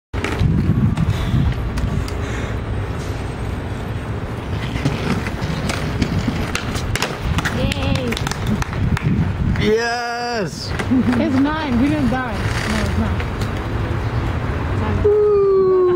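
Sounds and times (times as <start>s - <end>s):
skateboard wheels rolling on stone: 0.2s - 2.2s, 4.0s - 9.8s, 10.4s - 14.0s
skateboard clicks and knocks: 4.4s - 9.7s.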